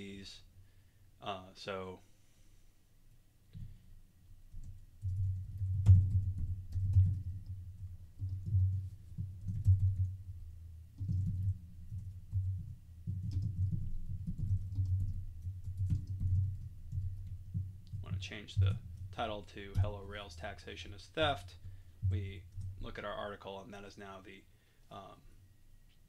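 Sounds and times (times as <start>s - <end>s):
typing on computer keyboard: 4.5s - 7.6s, 11.0s - 18.1s.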